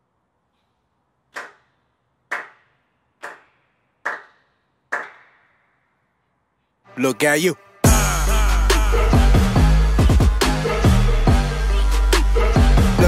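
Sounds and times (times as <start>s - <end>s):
sharp echoing cracks: 1.3s - 6.0s.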